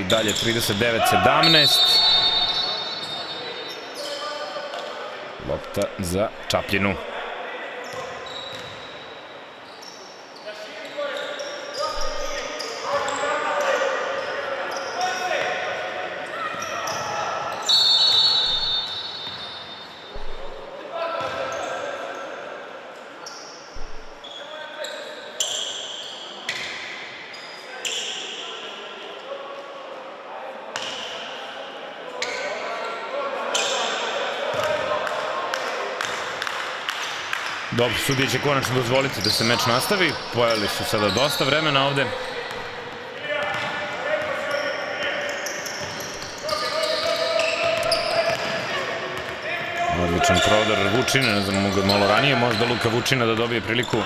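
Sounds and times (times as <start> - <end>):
basketball bouncing on court: 8.0 - 8.8, 12.0 - 12.5, 20.1 - 21.5, 23.8 - 24.2, 42.4 - 44.3, 47.6 - 49.4.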